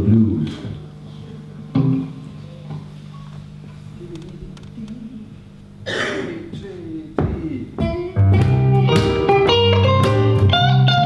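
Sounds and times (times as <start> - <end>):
low amplifier hum: 0.0 - 11.0
electric guitar chord ringing: 7.9 - 11.0.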